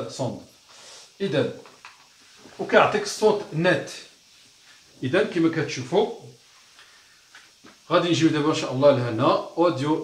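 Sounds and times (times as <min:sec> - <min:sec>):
man talking: 0:00.0 - 0:00.5, 0:01.2 - 0:01.6, 0:02.6 - 0:04.1, 0:05.0 - 0:06.4, 0:07.9 - 0:10.0.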